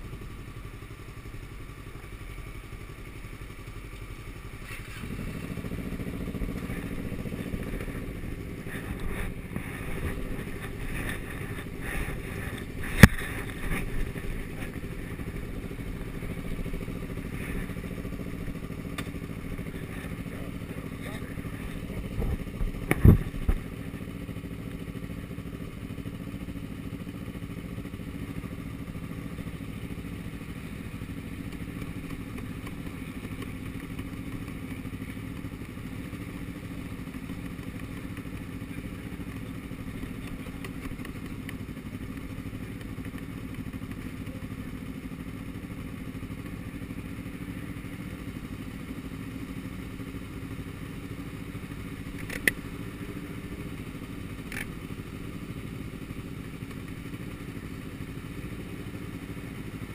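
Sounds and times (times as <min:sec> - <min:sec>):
motorcycle engines idling: 0:00.0 - 0:59.9
sharp click: 0:52.1 - 0:52.6.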